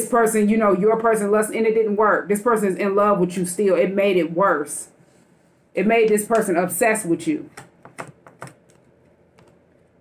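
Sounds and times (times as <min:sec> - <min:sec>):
cards tapping on table: 0:07.6 - 0:08.6.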